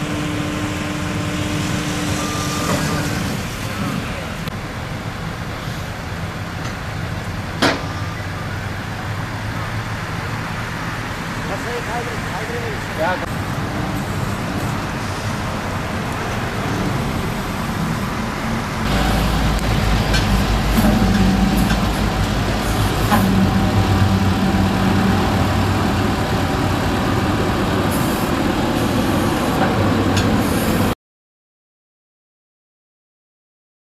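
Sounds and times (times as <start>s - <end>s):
winch whine: 0.0s - 4.3s, 13.4s - 30.9s
tow truck engine running: 0.0s - 30.9s.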